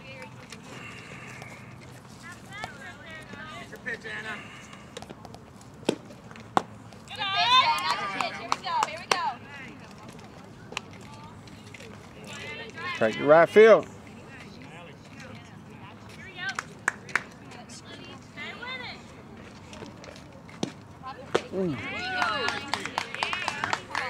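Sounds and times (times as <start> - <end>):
yelling and cheering: 7.1 - 8.6, 21.7 - 24.0.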